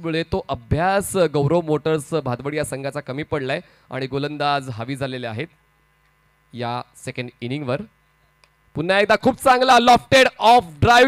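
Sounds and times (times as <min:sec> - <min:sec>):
faint electrical hum: 0:00.0 - 0:11.0
man commentating: 0:08.8 - 0:11.0.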